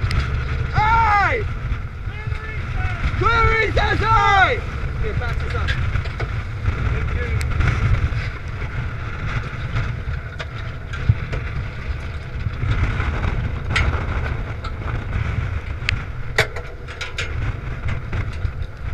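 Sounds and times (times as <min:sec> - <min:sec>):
boat running noise: 0:00.0 - 0:18.9
wind buffeting microphone: 0:00.0 - 0:18.9.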